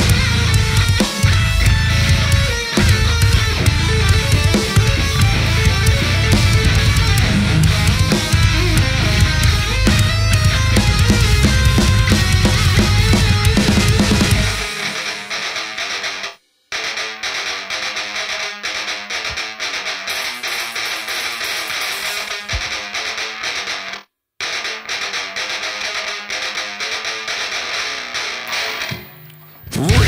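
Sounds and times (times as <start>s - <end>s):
heavy metal band: 0.0s - 29.1s, 29.7s - 30.0s
distorted electric guitar: 0.0s - 30.0s.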